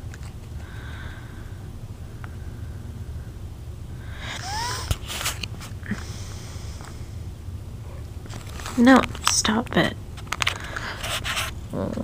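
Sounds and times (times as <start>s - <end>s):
low hum: 0.0s - 10.8s.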